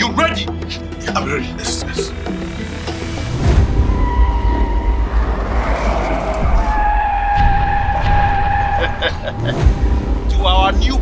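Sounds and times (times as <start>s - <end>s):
car tyres squealing: 1.8s - 10.1s
deep low rumble: 2.1s - 10.4s.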